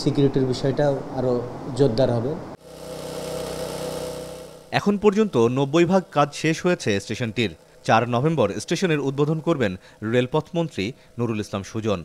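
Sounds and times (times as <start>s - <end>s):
small petrol engine running: 2.6s - 9.6s.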